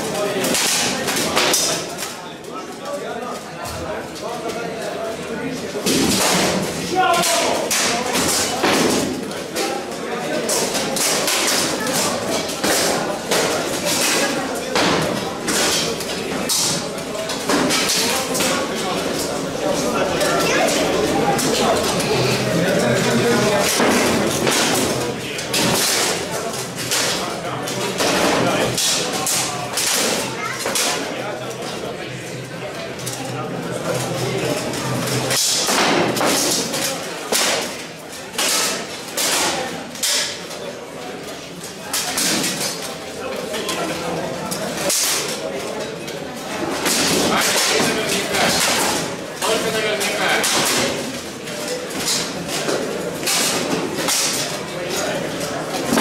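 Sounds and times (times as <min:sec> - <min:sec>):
spectators' voices: 0:00.0 - 0:56.0.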